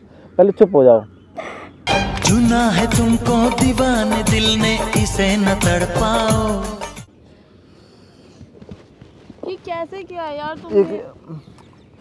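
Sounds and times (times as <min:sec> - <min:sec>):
faint footsteps tapping: 0:08.3 - 0:11.8
woman speaking: 0:09.4 - 0:11.2.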